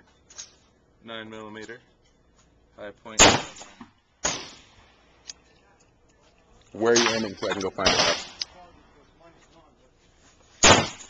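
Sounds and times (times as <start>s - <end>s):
loud gunshots: 3.2s - 4.8s, 6.9s - 8.4s, 10.6s - 11.0s.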